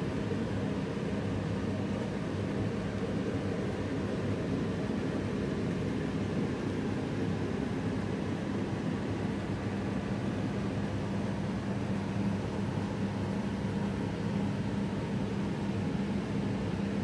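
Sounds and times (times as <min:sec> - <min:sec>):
mechanical hum with hiss: 0:00.0 - 0:17.0.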